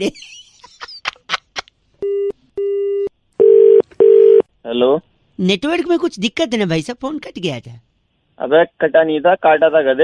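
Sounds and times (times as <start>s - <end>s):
telephone busy tone: 2.0s - 4.4s.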